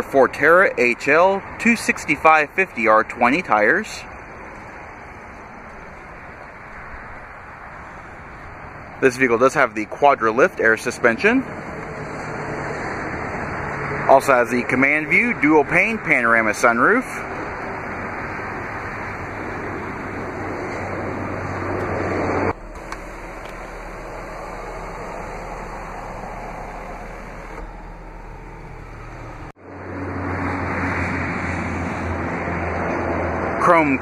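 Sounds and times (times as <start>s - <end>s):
outdoor noise with low hum: 17.2s - 29.5s
sunroof motor whirring: 17.4s - 29.5s.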